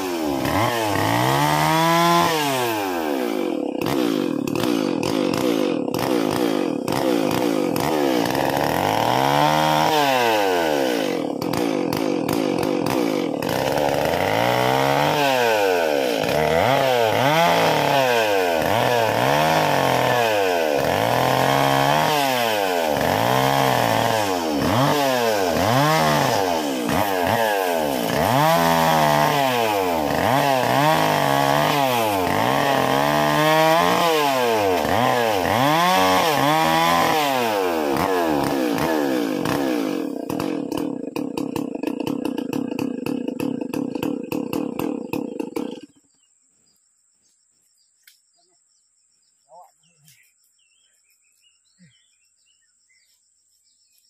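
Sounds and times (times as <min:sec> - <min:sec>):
chainsaw cutting branches: 0:00.0 - 0:46.3.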